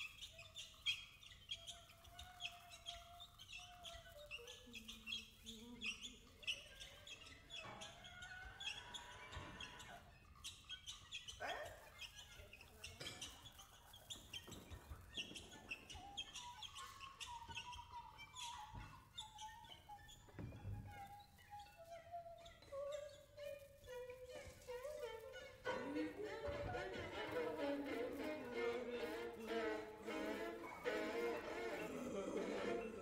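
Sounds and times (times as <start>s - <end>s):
high chirps squeaks and clicks: 0.0s - 33.0s.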